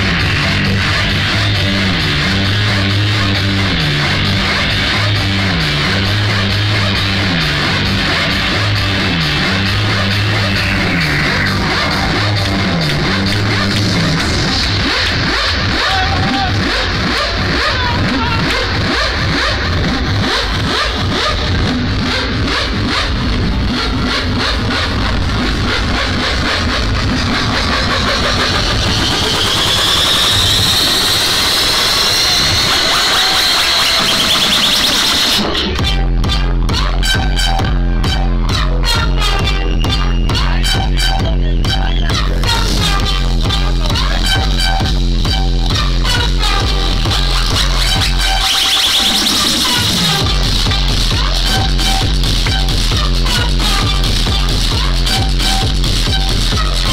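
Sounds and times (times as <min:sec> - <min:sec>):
rising sweep: 0:00.0 - 0:36.7
deep kick drum and bass: 0:00.0 - 0:56.9
loud techno music: 0:00.0 - 0:56.9.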